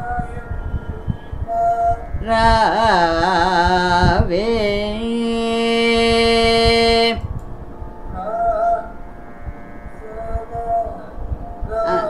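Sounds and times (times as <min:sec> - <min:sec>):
higher voice singing wavering phrases: 0:00.0 - 0:07.4, 0:08.1 - 0:09.0, 0:09.9 - 0:12.0
person singing long held note: 0:00.0 - 0:12.0.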